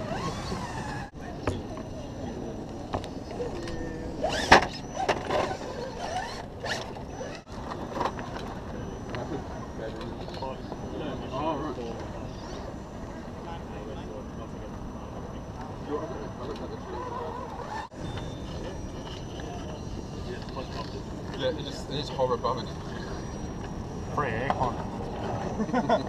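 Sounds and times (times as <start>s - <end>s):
wind: 0.0s - 26.0s.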